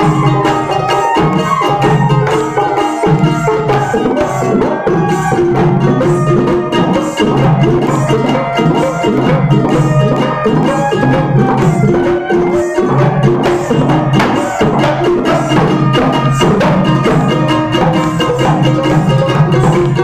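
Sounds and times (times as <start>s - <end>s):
hand drum rhythm: 0.0s - 20.0s
harmonica melody: 0.0s - 20.0s.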